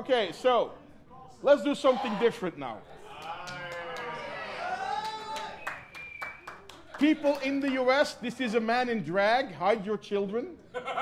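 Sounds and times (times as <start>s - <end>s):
hand claps: 5.0s - 8.1s.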